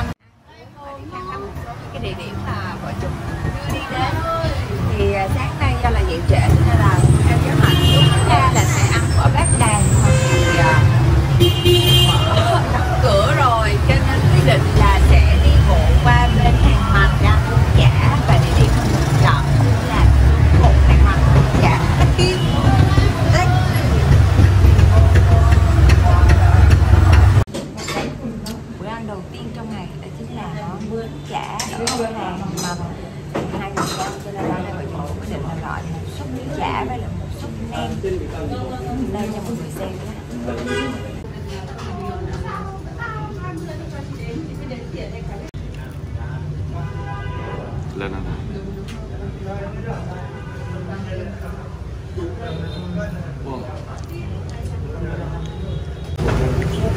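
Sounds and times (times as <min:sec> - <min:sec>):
woman talking: 0:00.0 - 0:10.2, 0:12.1 - 0:24.2, 0:27.7 - 0:37.8, 0:38.7 - 0:40.4
background chatter: 0:00.0 - 0:56.9
low traffic rumble: 0:00.0 - 0:56.9
motorbikes passing: 0:01.8 - 0:27.5, 0:56.2 - 0:56.9.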